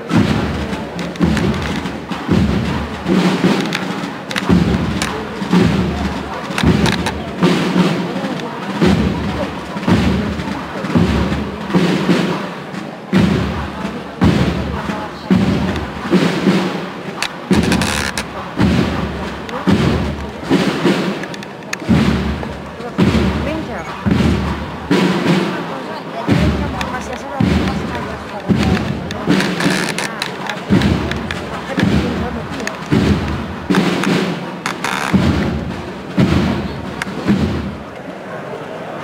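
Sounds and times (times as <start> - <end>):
deep procession drum beats: 0.0 - 38.1.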